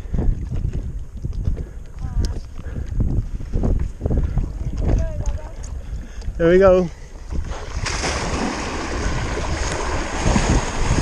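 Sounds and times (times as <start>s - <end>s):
wind buffeting microphone: 0.0s - 11.0s
water washing: 7.5s - 11.0s.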